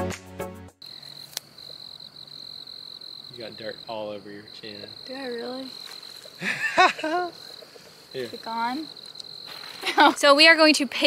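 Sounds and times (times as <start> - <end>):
high-pitched insect trill: 0.8 - 11.0
woman speaking: 5.1 - 5.8, 8.4 - 8.9, 9.8 - 11.0.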